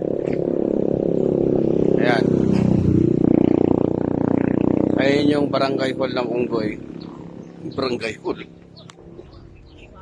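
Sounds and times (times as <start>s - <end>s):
loud low engine drone: 0.0s - 10.0s.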